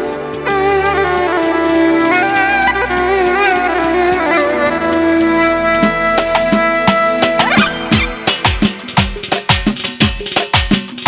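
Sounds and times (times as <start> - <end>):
synthesizer lead melody: 0.0 - 10.4
drum hits: 6.2 - 11.0.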